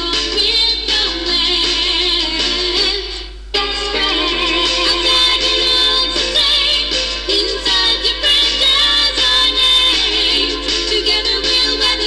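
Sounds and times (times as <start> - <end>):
upbeat pop song with vocals: 0.0 - 12.0.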